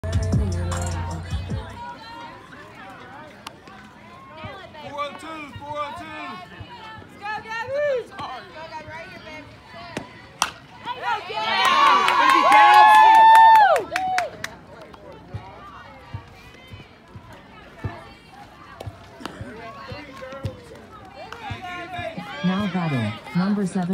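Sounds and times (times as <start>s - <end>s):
people chattering: 0.0s - 23.9s
spectators shouting and cheering: 0.0s - 23.9s
bat hitting ball crack: 10.4s - 10.6s
people clapping: 11.5s - 15.6s.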